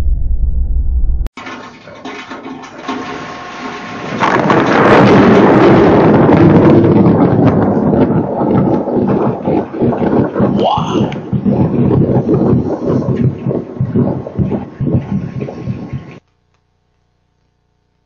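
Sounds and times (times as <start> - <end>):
crackling rushing storm noise: 3.6 - 16.2.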